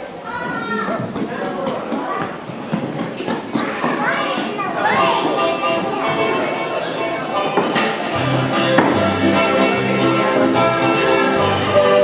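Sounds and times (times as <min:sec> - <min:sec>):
children's high voices: 0:00.0 - 0:01.1, 0:03.5 - 0:07.0
people talking over one another: 0:00.1 - 0:08.1.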